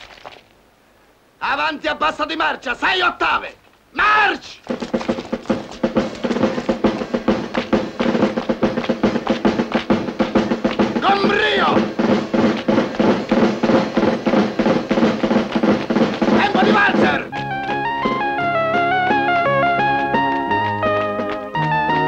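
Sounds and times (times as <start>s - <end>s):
man calling out: 1.4s - 4.6s, 11.0s - 11.8s, 16.4s - 17.3s
military march music: 4.0s - 22.0s
snare drum fast rhythm: 4.6s - 21.4s.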